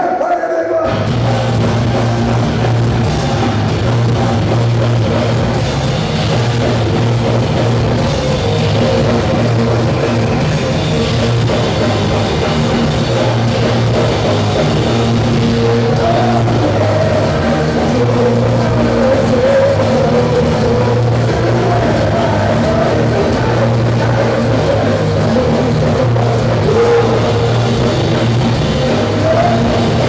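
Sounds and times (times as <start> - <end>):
punk band playing live: 0.0 - 30.0.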